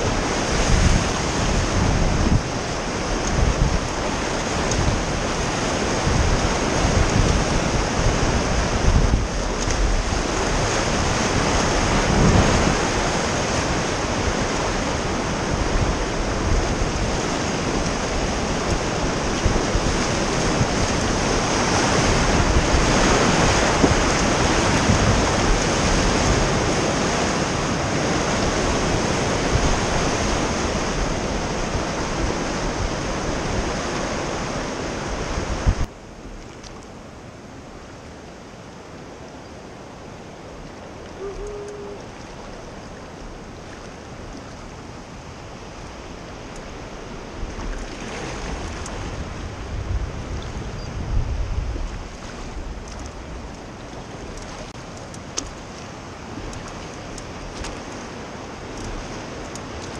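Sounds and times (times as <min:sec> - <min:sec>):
whitewater rushing: 0:00.0 - 0:35.9, 0:39.9 - 0:50.3.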